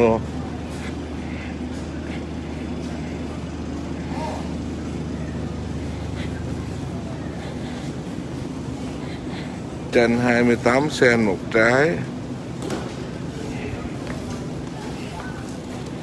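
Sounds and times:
faint distant voices: 0.0 - 16.0.

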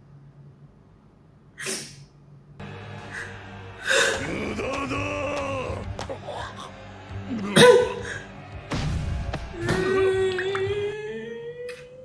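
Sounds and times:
quiet soundtrack music: 2.6 - 12.0.

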